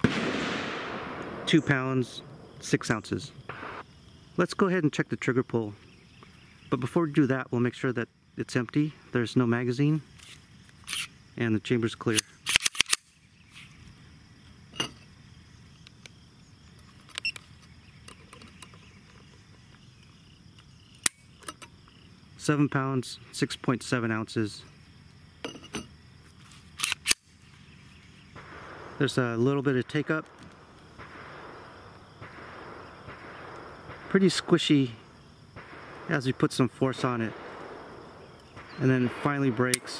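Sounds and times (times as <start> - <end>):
outdoor ambience hiss: 0.0 - 39.9
faint high insect buzz: 5.4 - 39.9
sharp click: 12.1 - 13.0.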